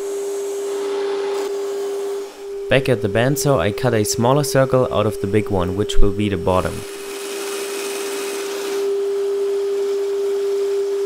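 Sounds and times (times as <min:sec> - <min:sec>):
woodworking machine motor hum: 0:00.0 - 0:11.0.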